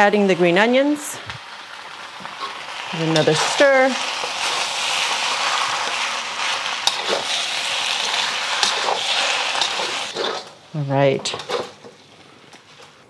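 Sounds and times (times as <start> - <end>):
food sizzling in a wok: 0.0 - 13.0.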